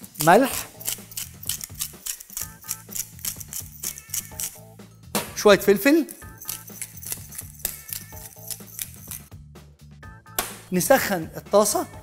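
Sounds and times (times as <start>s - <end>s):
background music: 0.0s - 12.0s
salt mill grinding clicks: 0.2s - 4.6s.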